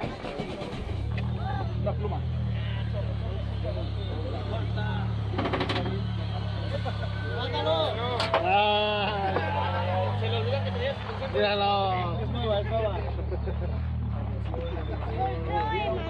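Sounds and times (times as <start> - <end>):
car engine starting and idling: 0.0 - 16.0.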